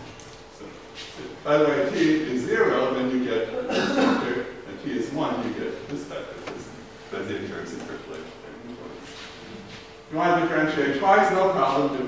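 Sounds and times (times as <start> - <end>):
faint hum: 0.0 - 12.0
man speaking: 0.6 - 9.1, 10.1 - 12.0.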